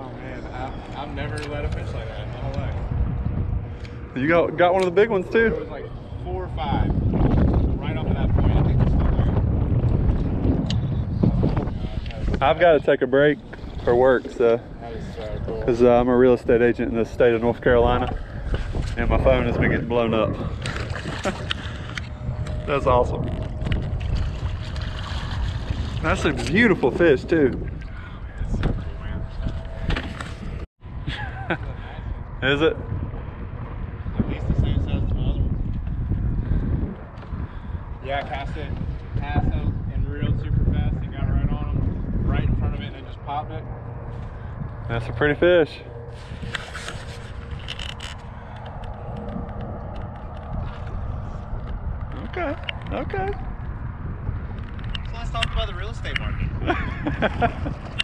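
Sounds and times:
wind rumble on microphone: 0:00.0 - 0:58.0
fish thrashing and splashing water: 0:20.5 - 0:22.1, 0:23.4 - 0:26.5.

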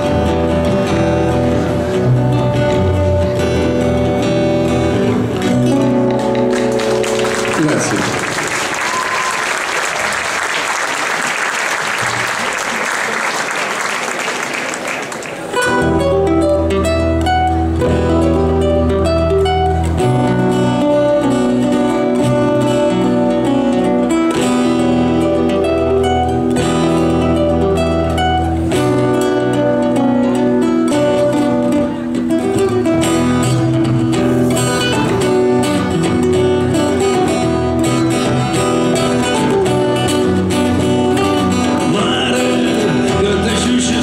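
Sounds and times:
plucked double bass: 0:00.0 - 0:06.6, 0:15.6 - 0:44.0
acoustic guitars: 0:00.0 - 0:44.0
audience applauding: 0:06.1 - 0:15.8.

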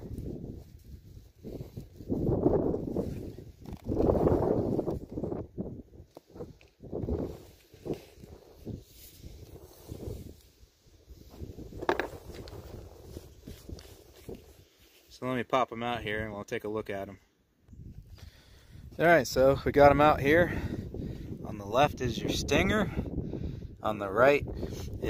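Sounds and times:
rustling and scraping of gloves: 0:00.0 - 0:15.5.

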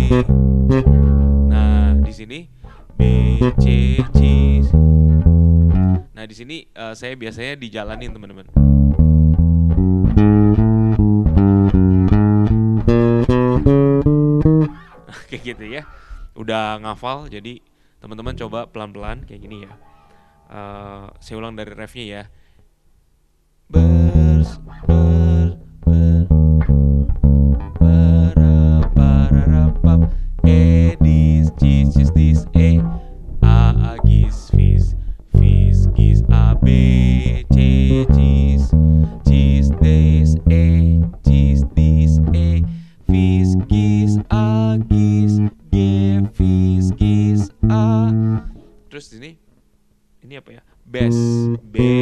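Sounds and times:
electric bass plucked notes: 0:00.0 - 0:06.2, 0:08.0 - 0:15.1, 0:23.7 - 0:48.7, 0:51.0 - 0:52.0.

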